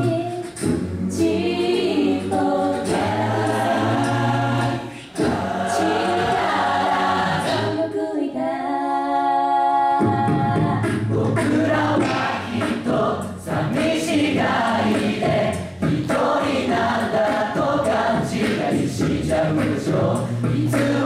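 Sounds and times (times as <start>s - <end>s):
choir singing in harmony: 0.0s - 21.0s.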